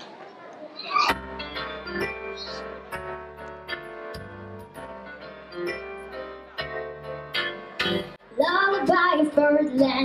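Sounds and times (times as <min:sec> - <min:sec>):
girl singing into a microphone: 0:08.3 - 0:10.0.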